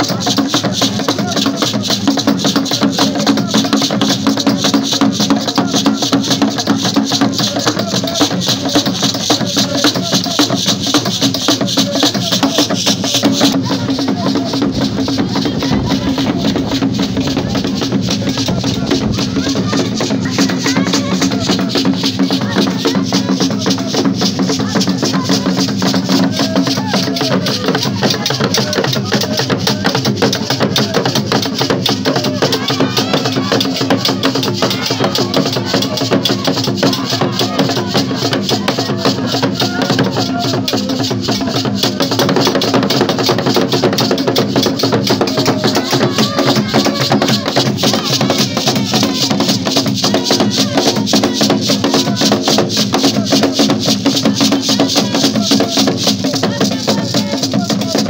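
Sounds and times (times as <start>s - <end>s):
voices singing over drums: 0.0s - 58.0s
drums struck with sticks: 11.0s - 24.8s.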